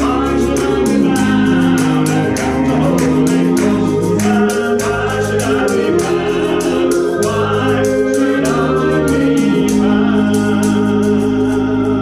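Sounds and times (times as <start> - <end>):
gospel singing: 0.0 - 12.0
instrumental backing: 0.0 - 12.0
rhythmic hand clapping: 0.0 - 12.0.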